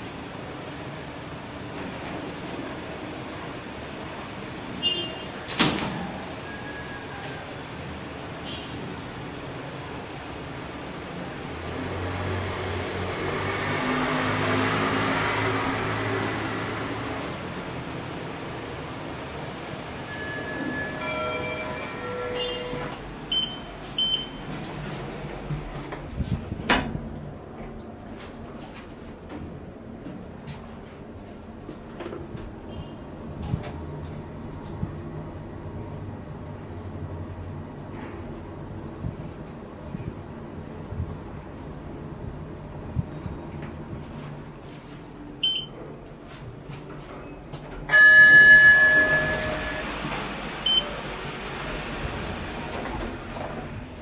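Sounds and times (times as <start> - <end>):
elevator car arriving rush: 5.9 - 8.3, 9.8 - 25.8, 47.9 - 54.0
elevator low hum: 15.7 - 54.0.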